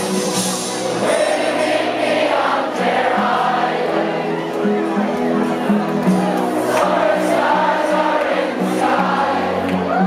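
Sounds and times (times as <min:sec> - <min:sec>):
rock band playing live: 0:00.0 - 0:03.0
crowd singing together: 0:00.0 - 0:10.0.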